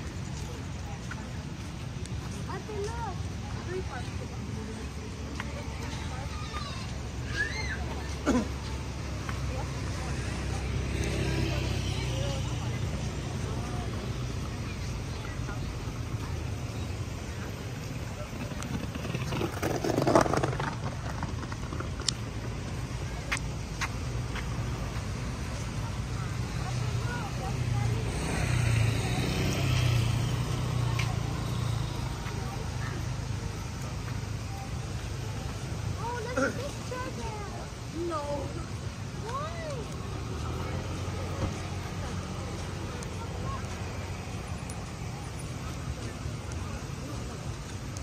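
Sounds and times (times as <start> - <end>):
faint voices: 0.0 - 48.0
skateboard wheels rolling on paving: 0.0 - 48.0
traffic rumble: 0.0 - 48.0.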